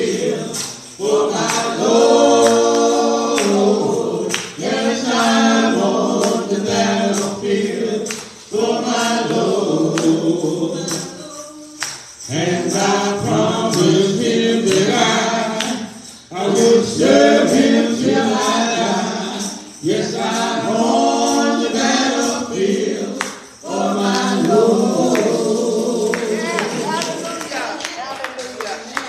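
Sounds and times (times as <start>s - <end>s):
congregation singing gospel: 0.0s - 29.0s
sharp percussive beat: 0.0s - 29.0s.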